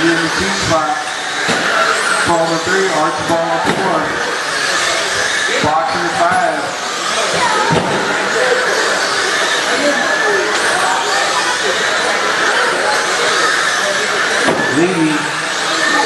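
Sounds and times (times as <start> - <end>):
electric motors whining: 0.0 - 16.0
people talking: 0.0 - 16.0.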